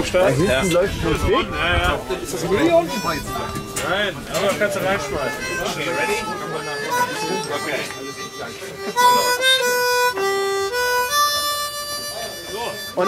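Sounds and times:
voices chattering quietly: 0.0 - 13.0
harmonica playing slow tune: 0.2 - 13.0.

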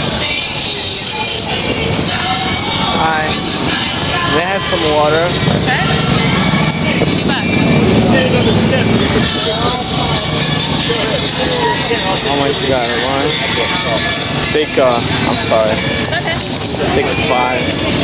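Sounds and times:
background voices: 0.0 - 18.0
motorcycle engine rumble: 0.0 - 18.0.

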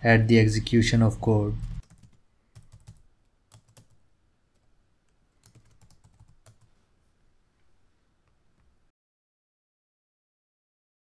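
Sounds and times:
faint keyboard typing: 1.6 - 6.8.

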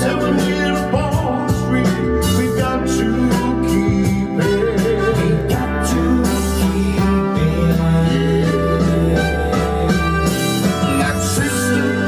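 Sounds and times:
guitar and drums backing track: 0.0 - 12.0
man singing: 0.0 - 12.0.

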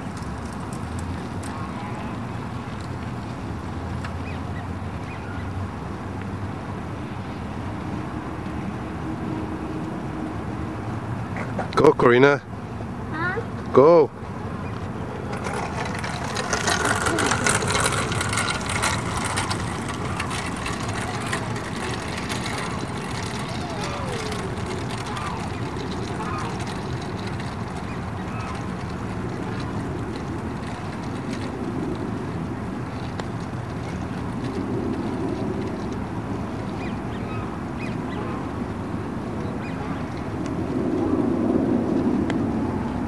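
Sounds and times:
outdoor background noise: 0.0 - 43.0
faint distant voices: 1.5 - 2.7, 13.1 - 29.8.

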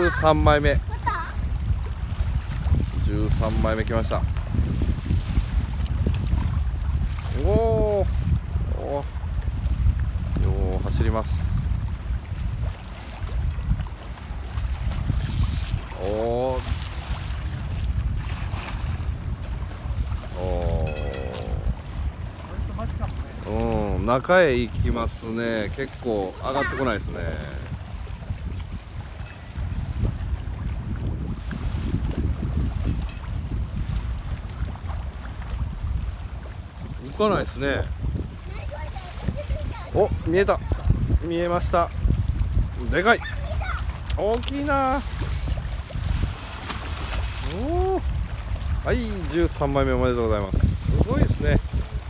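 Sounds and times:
water lapping against seawall: 0.0 - 52.0
wind buffeting microphone: 0.0 - 52.0.

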